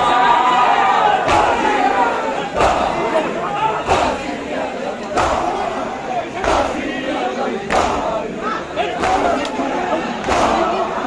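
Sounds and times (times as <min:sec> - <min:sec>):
crowd chanting and calling out: 0:00.0 - 0:11.0.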